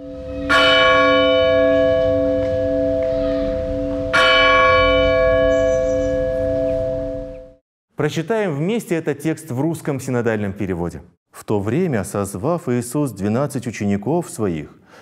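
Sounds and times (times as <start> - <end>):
church bell ringing: 0.0 - 7.6.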